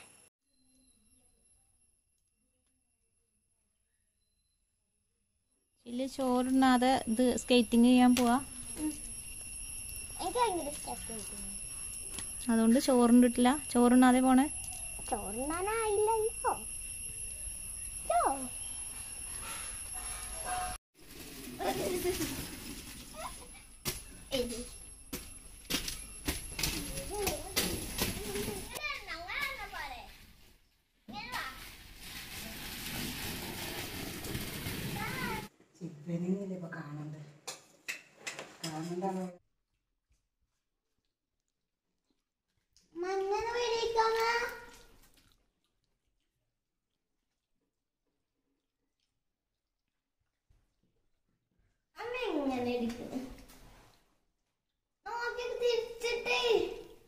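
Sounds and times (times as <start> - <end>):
faint high-pitched tone: 0.0 - 4.7, 6.0 - 20.8.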